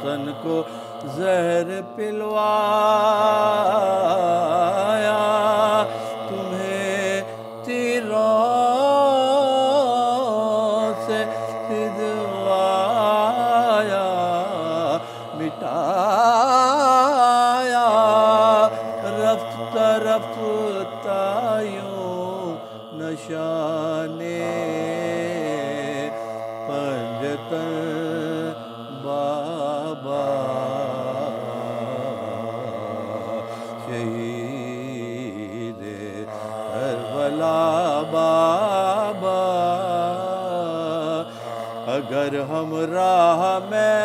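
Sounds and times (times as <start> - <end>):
men chanting a lament: 0.0 - 44.0.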